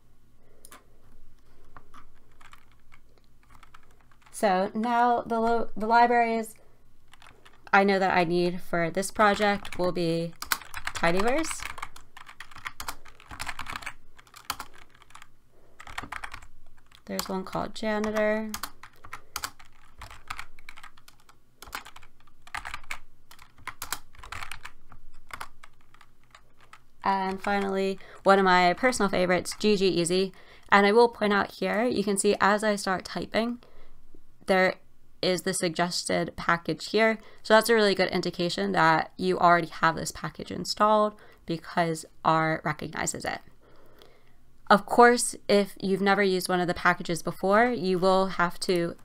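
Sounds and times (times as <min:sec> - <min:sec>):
keyboard keys clicking: 0:01.6 - 0:04.4, 0:09.2 - 0:27.8.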